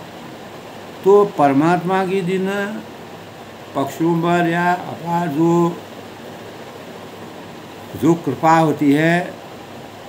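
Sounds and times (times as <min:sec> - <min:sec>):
ceiling fan hiss: 0:00.0 - 0:10.0.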